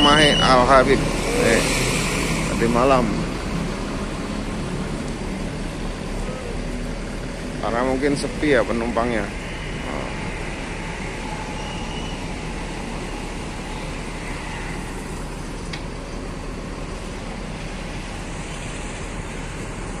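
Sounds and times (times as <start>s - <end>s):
coach engines idling: 0.0s - 20.0s.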